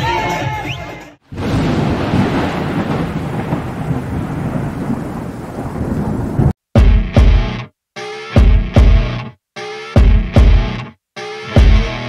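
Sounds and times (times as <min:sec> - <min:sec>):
loud thunder-like rumbling: 0:01.3 - 0:06.6.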